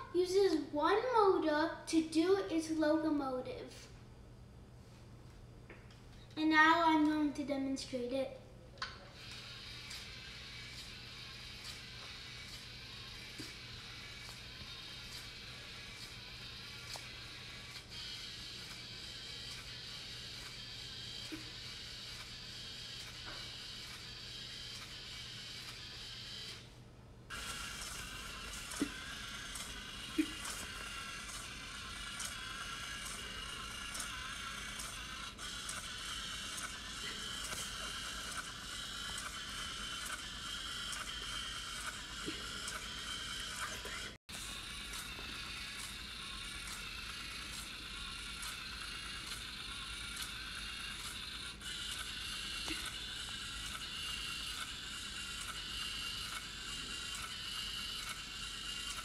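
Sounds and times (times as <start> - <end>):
robot motor whining: 9.1 - 59.0.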